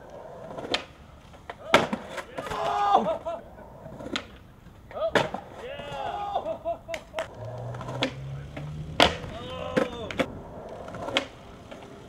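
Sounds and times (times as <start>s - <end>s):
skateboard knocking on concrete: 0.0s - 2.6s, 6.9s - 12.0s.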